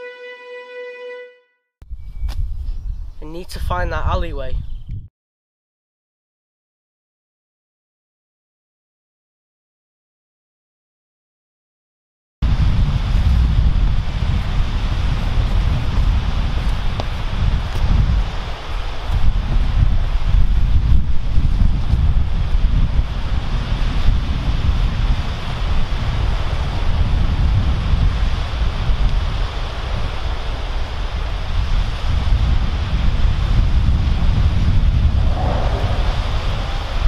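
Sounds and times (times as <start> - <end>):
wind buffeting microphone: 1.8 - 5.1, 12.4 - 37.0.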